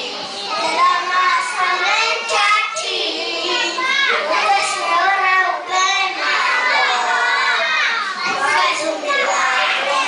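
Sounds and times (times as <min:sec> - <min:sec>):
boy singing into a microphone: 0:00.0 - 0:10.0
children shouting: 0:00.0 - 0:10.0.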